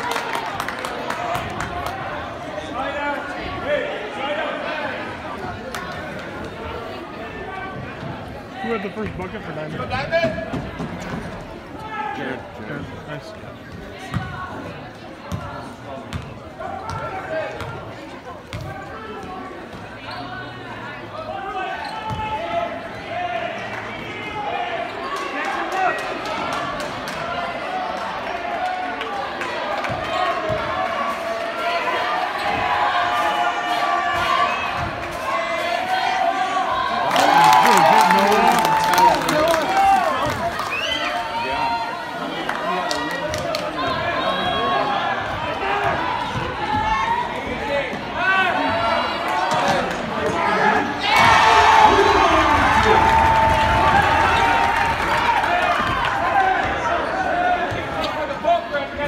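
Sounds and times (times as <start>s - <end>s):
spectators' voices: 0.0s - 59.0s.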